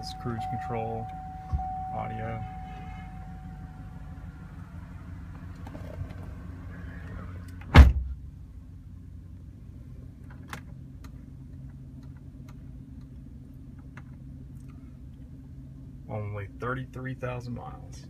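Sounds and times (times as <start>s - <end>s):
engine idling hum: 0.0s - 18.0s
loud thump: 7.7s - 8.2s.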